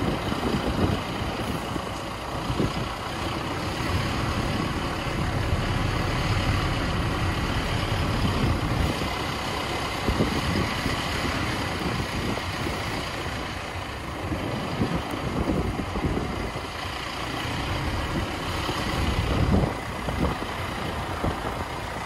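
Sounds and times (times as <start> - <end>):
vehicle tyres and engine on sand: 0.0 - 22.0.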